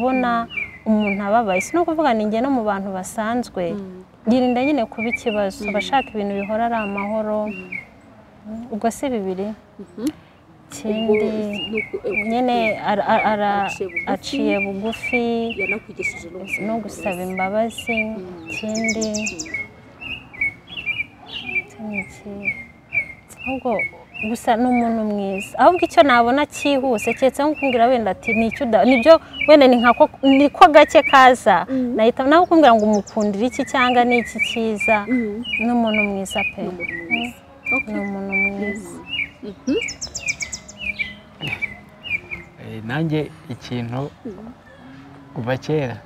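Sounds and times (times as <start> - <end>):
small bird chirping: 3.6 - 9.1, 9.8 - 44.8.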